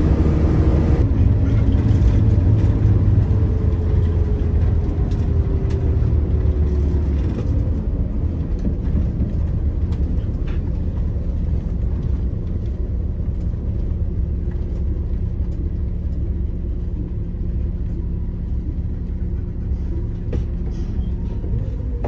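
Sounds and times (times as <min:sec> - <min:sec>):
coach diesel engine rumble: 0:00.0 - 0:22.0.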